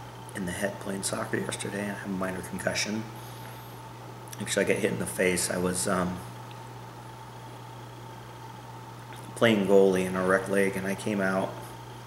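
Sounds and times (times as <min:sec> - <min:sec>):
constant low hum: 0:00.0 - 0:12.0
faint thin whine: 0:00.0 - 0:12.0
steady hiss: 0:00.0 - 0:12.0.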